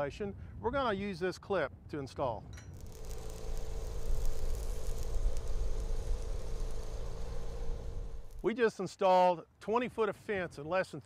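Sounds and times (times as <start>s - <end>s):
low even hum: 2.5s - 8.5s
welding arc crackling sizzle: 2.6s - 8.5s.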